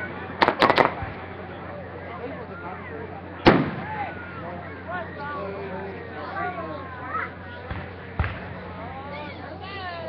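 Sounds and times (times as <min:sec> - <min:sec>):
people talking: 0:00.0 - 0:10.0
dull firework thumps: 0:07.7 - 0:08.6.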